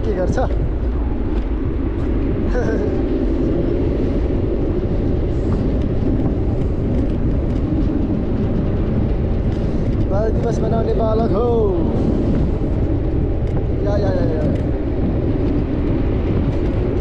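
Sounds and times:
wind rushing on microphone: 0:00.0 - 0:17.0.

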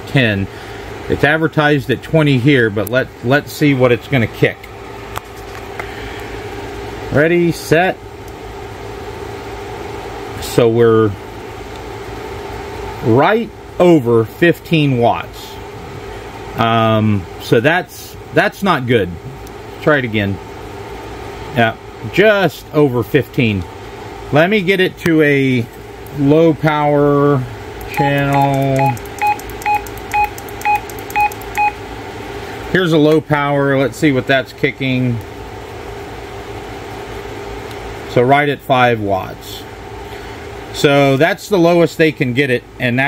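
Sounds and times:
fan whirring: 0:00.0 - 0:43.0
radio key beeps: 0:27.9 - 0:31.8.

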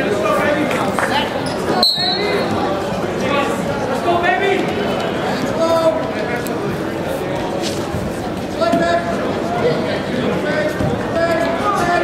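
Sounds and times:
crowd chatter: 0:00.0 - 0:12.0
referee's whistle blast: 0:01.8 - 0:02.4.

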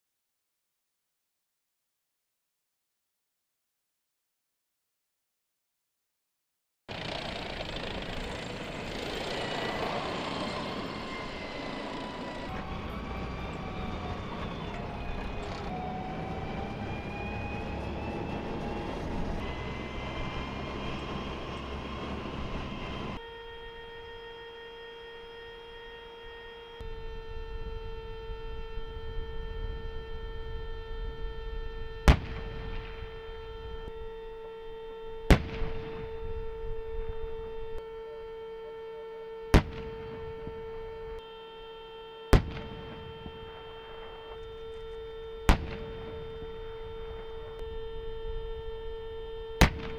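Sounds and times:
tank track noise: 0:06.9 - 0:23.2
tank turbine whine: 0:06.9 - 0:49.9
tank gunfire blasts: 0:42.3 - 0:44.2, 0:45.5 - 0:46.5.

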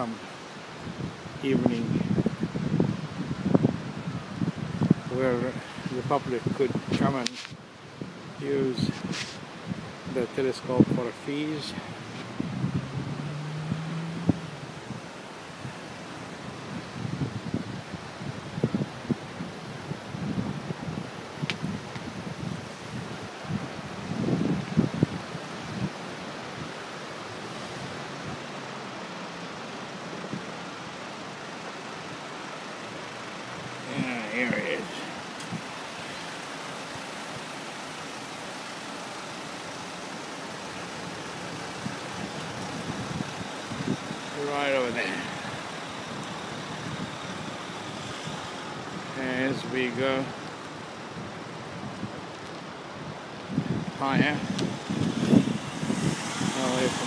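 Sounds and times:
outdoor background hiss: 0:00.0 - 0:57.0
wind buffeting microphone: 0:00.8 - 0:11.0, 0:11.7 - 0:26.8, 0:41.0 - 0:57.0.

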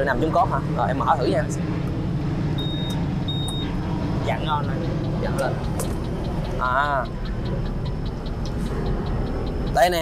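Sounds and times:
low rumble of street traffic: 0:00.0 - 0:10.0
high electronic beeps: 0:02.6 - 0:10.0.

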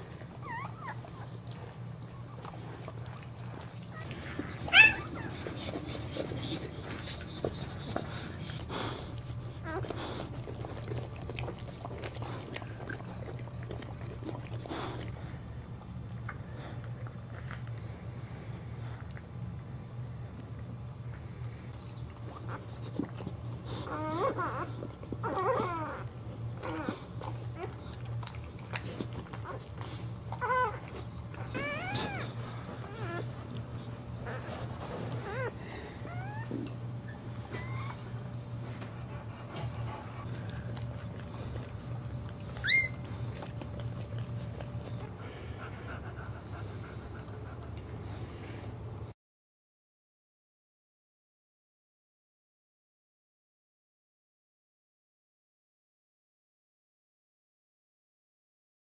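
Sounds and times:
puppy whining: 0:00.0 - 0:15.4, 0:21.9 - 0:47.8
steady low hum: 0:00.0 - 0:49.2
puppy squealing: 0:04.0 - 0:05.7, 0:31.4 - 0:33.3, 0:37.1 - 0:38.0, 0:42.6 - 0:43.1
puppy squeak: 0:04.7 - 0:05.3, 0:42.6 - 0:43.0.

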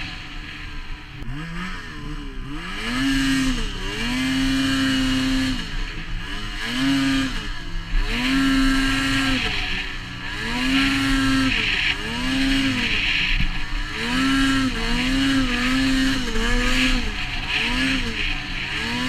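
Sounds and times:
snowmobile engine revving: 0:00.0 - 0:19.0.

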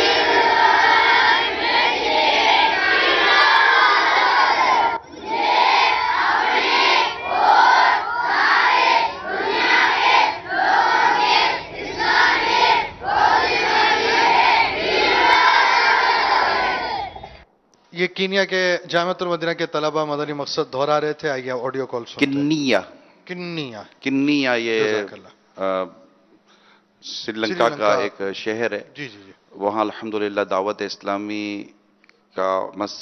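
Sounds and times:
boys chanting in unison: 0:00.0 - 0:17.2.

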